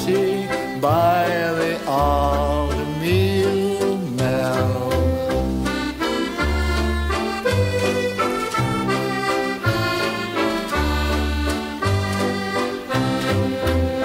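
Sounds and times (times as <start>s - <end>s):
instrumental folk melody: 0.0s - 14.0s.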